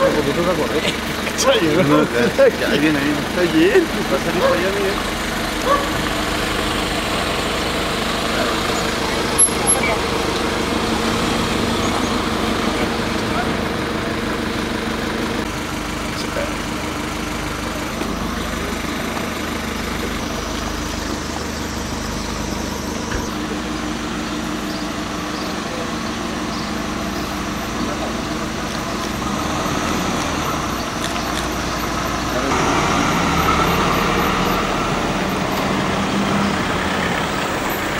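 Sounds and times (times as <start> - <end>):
people's voices: 0.0 - 14.4, 15.2 - 23.8, 24.9 - 37.9
vehicle engines running: 0.0 - 37.9.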